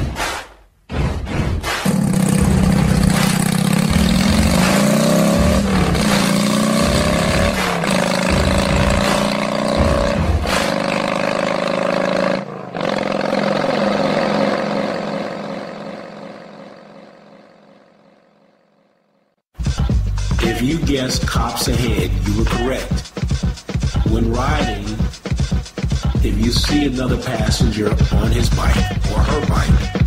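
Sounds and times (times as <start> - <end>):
engines revving: 1.6 - 17.7.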